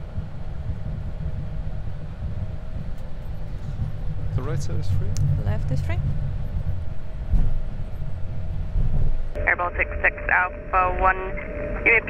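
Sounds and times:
aircraft rolling low rumble: 0.0s - 12.0s
faint steady hum: 0.0s - 12.0s.

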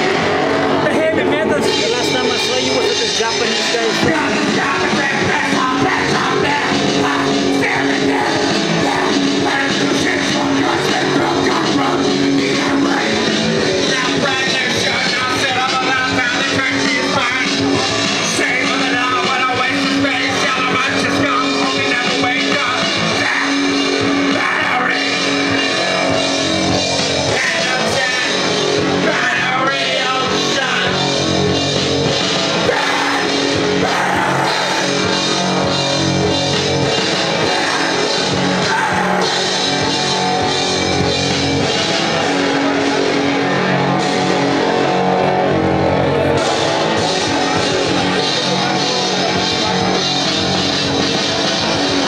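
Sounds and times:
rapping into a microphone: 0.0s - 25.3s, 27.2s - 31.1s
heavy music with distorted guitar: 0.0s - 52.0s
loud backing track: 0.0s - 52.0s.

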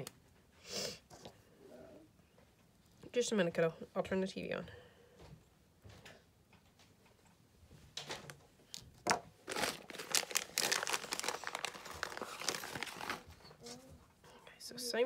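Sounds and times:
plastic bag crinkling: 8.7s - 13.4s.

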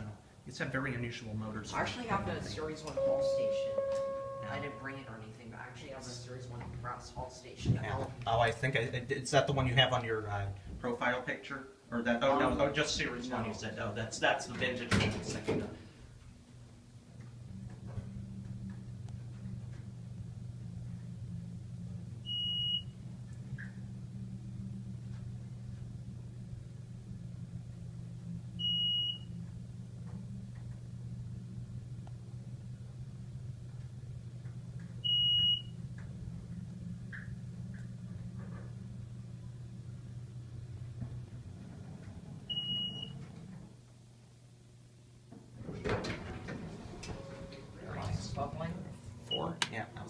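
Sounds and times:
elevator car hum: 1.7s - 5.7s, 16.1s - 49.5s
short high beep: 3.0s - 5.1s.

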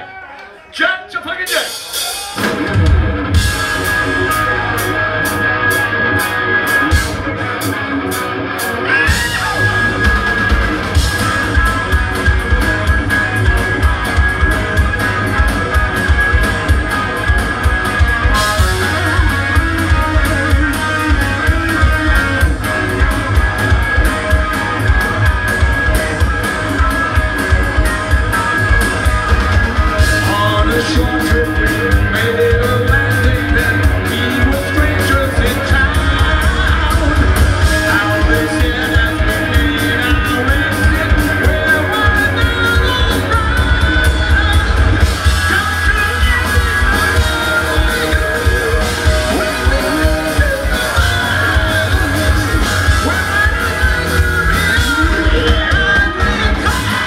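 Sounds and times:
pounding drum kit: 1.3s - 57.0s
bass guitar: 1.8s - 57.0s
electric guitar: 1.9s - 57.0s
person singing: 8.8s - 12.7s, 30.0s - 57.0s.

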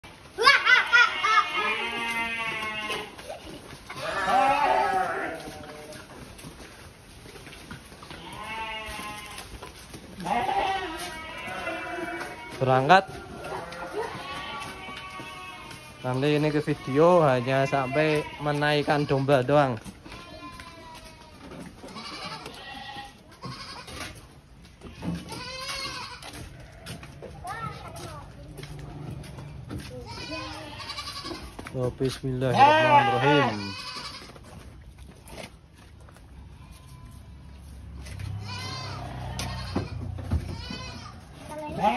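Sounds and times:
sheep bleating: 0.4s - 3.3s, 3.9s - 6.1s, 8.1s - 9.5s, 10.2s - 19.4s, 20.0s - 24.0s, 24.9s - 27.0s, 30.0s - 31.5s, 32.4s - 34.3s, 38.3s - 41.9s.

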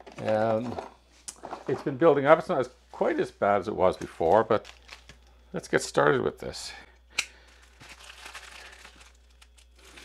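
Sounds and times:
plastic mailer crinkling: 4.2s - 5.3s, 7.4s - 10.0s.

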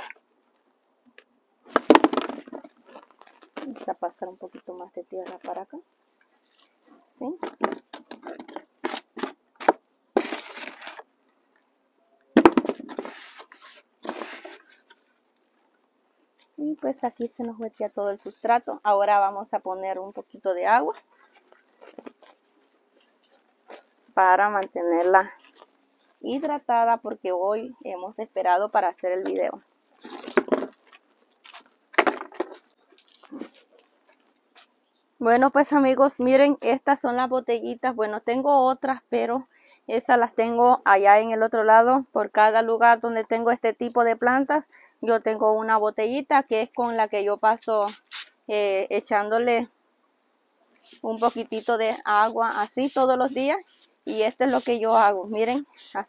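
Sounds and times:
rustling: 1.1s - 11.7s, 12.6s - 16.6s, 20.9s - 24.3s, 24.9s - 26.5s, 29.5s - 35.1s, 50.7s - 56.0s
spray bottle spritzing: 47.7s - 48.4s, 50.8s - 56.0s
hands scraping potting mix: 50.8s - 56.0s.

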